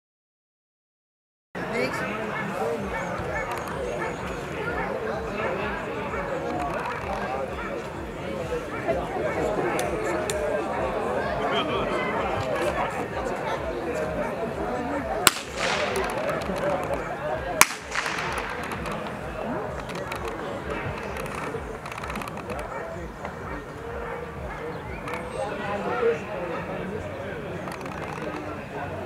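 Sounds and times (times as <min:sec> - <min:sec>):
people chattering: 0:01.6 - 0:29.0
dog barking: 0:02.3 - 0:05.6, 0:22.6 - 0:24.8
blank pistol shots with echo: 0:15.2 - 0:16.6, 0:17.6 - 0:19.1.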